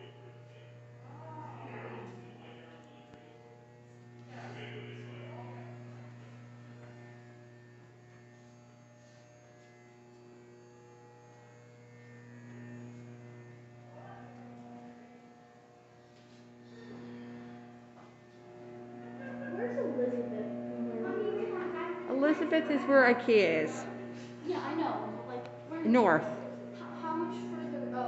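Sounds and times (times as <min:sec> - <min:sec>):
faint voices: 0:00.0 - 0:03.6, 0:04.2 - 0:06.2
electrical hum: 0:00.0 - 0:28.0.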